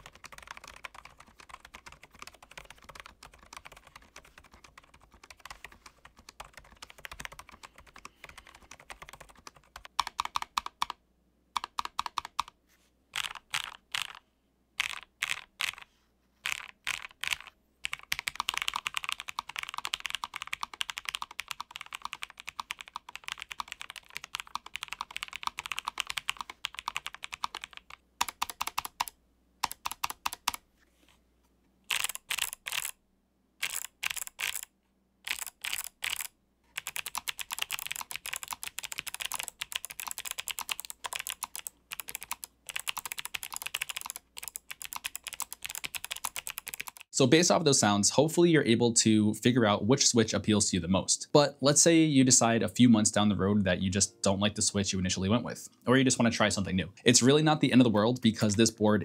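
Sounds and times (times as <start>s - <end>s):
mechanical keyboard typing: 0.0s - 11.0s, 11.6s - 12.6s, 13.2s - 14.2s, 14.8s - 30.6s, 31.9s - 33.0s, 33.6s - 34.7s, 35.3s - 47.1s.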